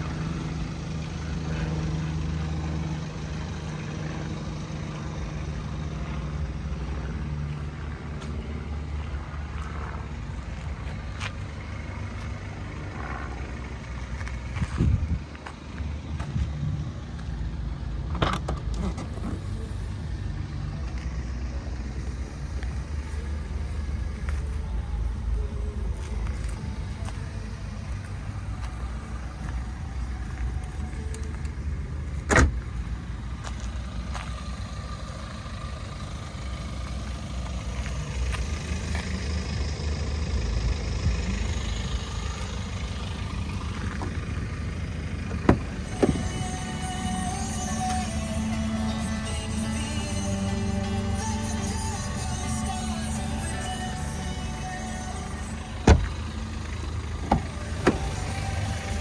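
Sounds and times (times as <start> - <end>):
diesel engine idling: 0.0 - 59.0
car door clicks: 32.2 - 32.6, 45.4 - 46.3, 55.8 - 56.2, 57.2 - 58.1.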